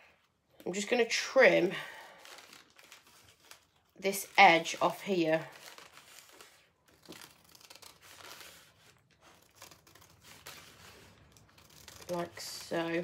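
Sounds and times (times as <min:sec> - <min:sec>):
paper crinkling: 0:01.7 - 0:13.0
scissors snipping paper: 0:02.2 - 0:13.0.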